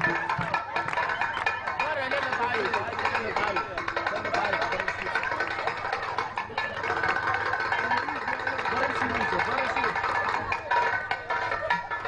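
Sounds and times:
voices talking over one another: 0.0s - 12.0s.

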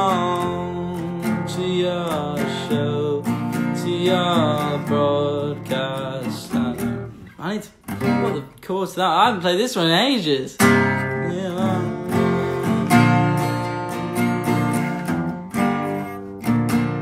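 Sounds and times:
man singing: 0.0s - 15.0s
acoustic guitar strumming: 0.0s - 17.0s.

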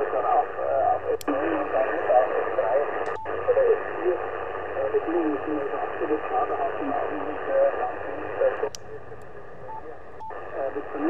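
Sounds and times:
weak voice over radio: 0.0s - 8.7s, 9.5s - 11.0s
radio band noise hiss: 0.0s - 11.0s.

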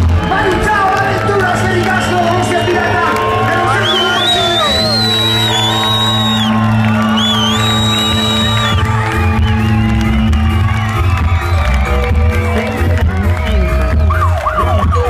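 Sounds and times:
audience whooping and cheering: 0.0s - 15.0s
live band music over loudspeakers: 0.0s - 15.0s.

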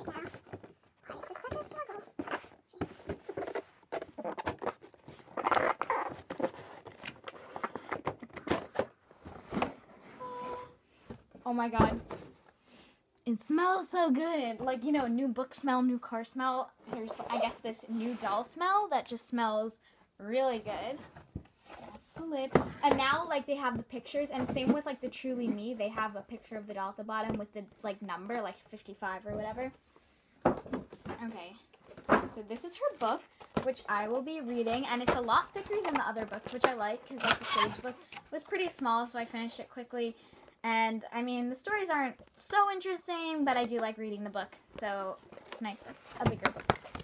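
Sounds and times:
girl speaking: 0.0s - 3.1s, 13.3s - 21.0s, 21.9s - 29.7s, 32.3s - 46.5s
cardboard packaging rustling: 1.4s - 9.9s.

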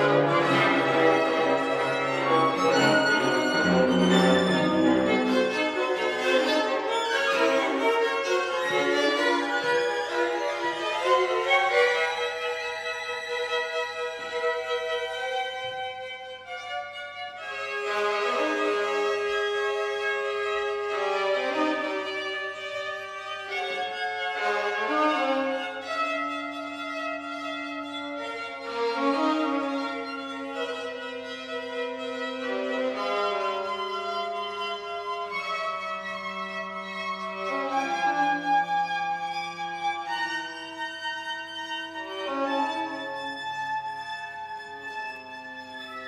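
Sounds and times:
string quartet playing: 0.0s - 46.0s.

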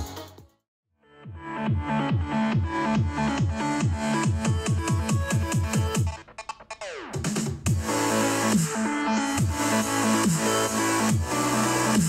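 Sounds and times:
electronic music with bass beat: 0.0s - 0.6s, 1.4s - 12.0s.

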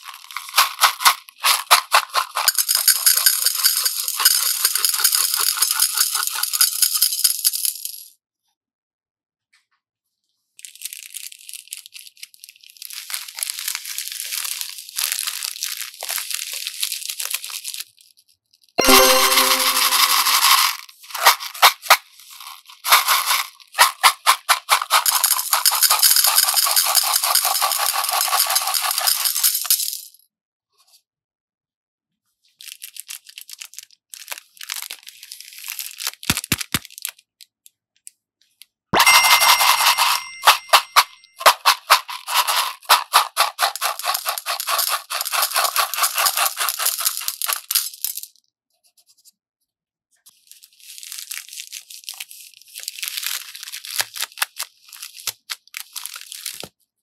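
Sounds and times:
plastic beads rattling into glass bowl: 0.0s - 8.1s, 10.6s - 18.0s, 18.8s - 30.2s, 32.6s - 37.1s, 39.0s - 48.3s, 50.8s - 56.7s.

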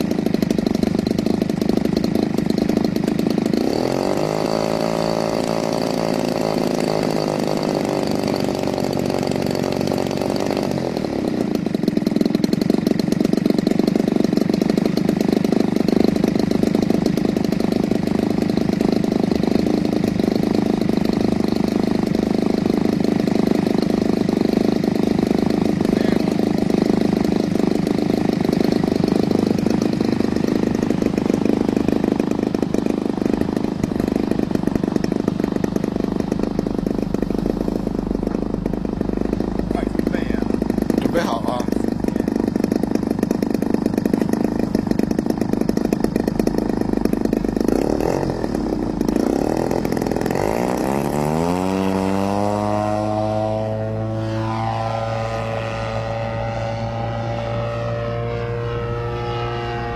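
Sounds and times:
model plane engine running: 0.0s - 59.9s.

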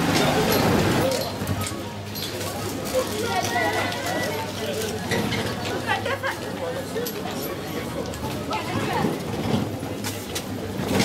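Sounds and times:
cart wheels rattling on paving: 0.0s - 11.0s.

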